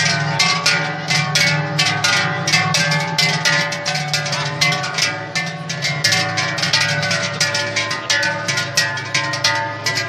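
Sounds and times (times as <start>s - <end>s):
large cowbells clanging: 0.0s - 10.0s.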